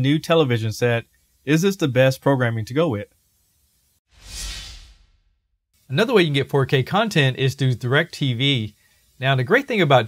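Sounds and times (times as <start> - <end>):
whoosh transition effect: 4.1 - 5.5.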